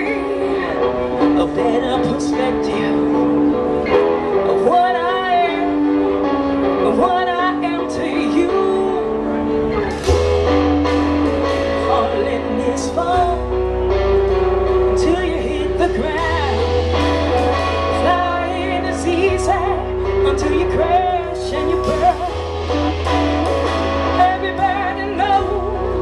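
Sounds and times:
woman singing: 0.0 - 10.0, 10.8 - 26.0
live rock band playing: 0.0 - 26.0
deep held bass note: 21.9 - 24.2.

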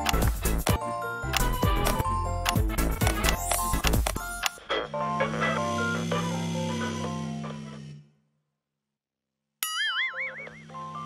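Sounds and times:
children's background music: 0.0 - 7.6
cartoon boing: 9.6 - 10.6.

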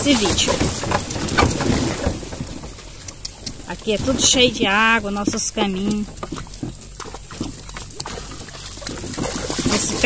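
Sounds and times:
hooves and harness clicks: 0.0 - 3.8, 5.0 - 10.0
cart wheels rumbling: 0.0 - 10.0.

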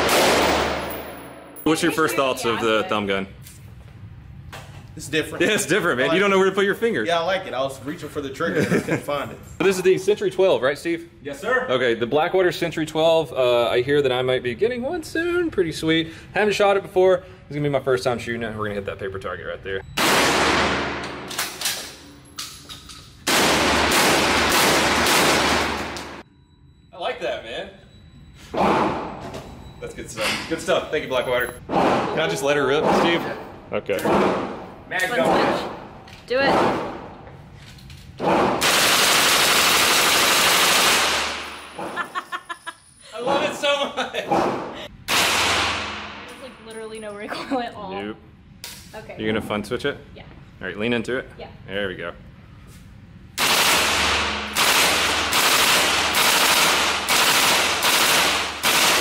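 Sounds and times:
shotgun shots echoing indoors: 0.0 - 1.6, 20.0 - 22.0, 23.2 - 26.2, 34.0 - 35.9, 38.2 - 41.8, 44.3 - 46.4, 53.4 - 59.0.

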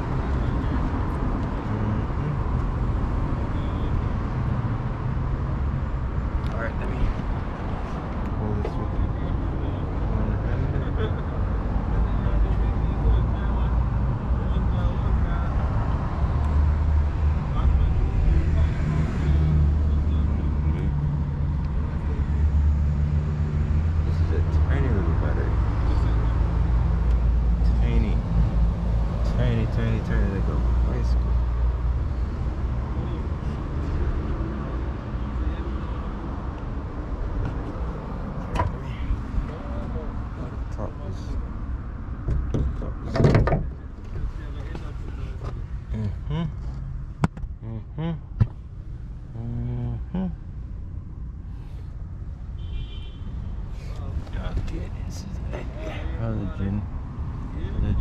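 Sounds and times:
muffled talk: 7.8 - 15.8.

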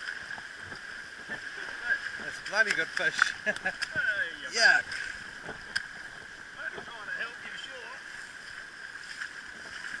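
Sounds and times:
small waves lapping on sand: 0.0 - 10.0
wind: 0.0 - 10.0.

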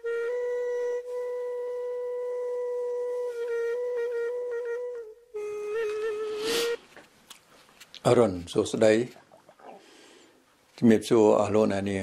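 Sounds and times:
flute holding long note: 0.0 - 6.8.

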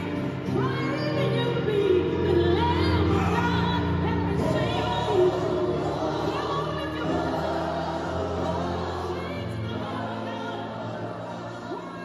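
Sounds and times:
singers holding sustained notes: 0.0 - 12.0.

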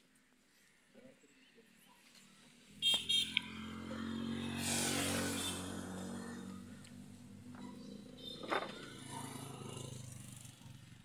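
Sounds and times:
vehicle engine passing: 2.7 - 11.0
high horn beeps: 2.8 - 3.4.

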